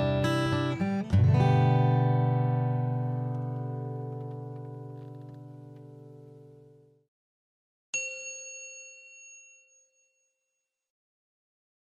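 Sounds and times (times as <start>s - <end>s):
bell-like chime: 8.0s - 10.9s.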